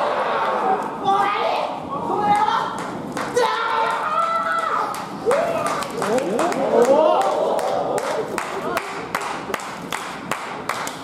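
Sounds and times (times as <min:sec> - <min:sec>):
audience clapping in rhythm: 0:04.2 - 0:11.0.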